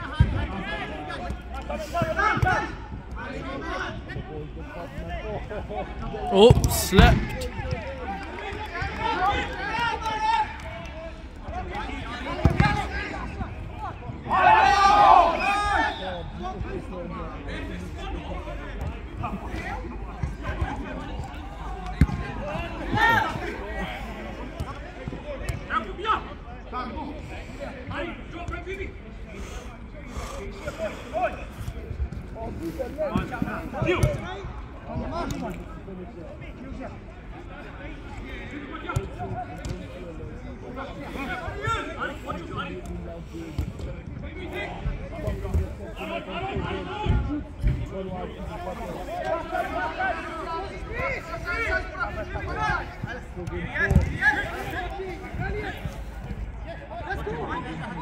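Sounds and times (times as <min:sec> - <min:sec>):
players shouting: 0:06.0 - 0:16.9, 0:19.3 - 0:24.5, 0:48.2 - 0:58.0
football kicks: 0:52.8 - 0:54.2.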